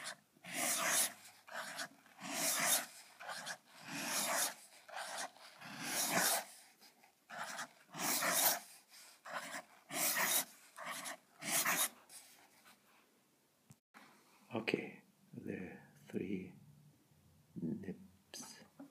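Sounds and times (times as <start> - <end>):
fountain pen scratching paper: 0.0 - 12.4.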